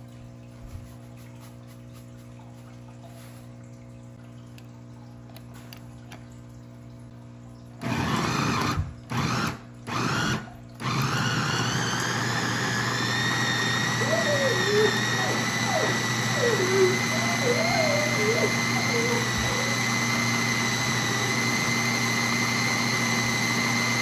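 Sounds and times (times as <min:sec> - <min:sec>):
food chopper motor whining: 0:07.8 - 0:24.0.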